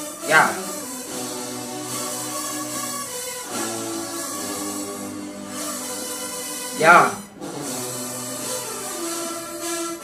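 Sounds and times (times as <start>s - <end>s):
marching band music: 0.0s - 10.0s.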